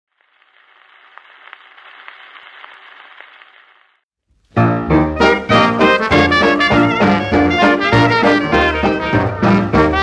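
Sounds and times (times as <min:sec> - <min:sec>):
record surface hiss: 0:00.1 - 0:04.7.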